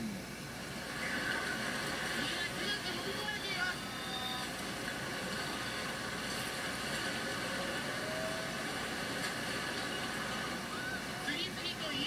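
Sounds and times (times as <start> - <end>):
floodwater rushing through television: 0.6 - 12.0.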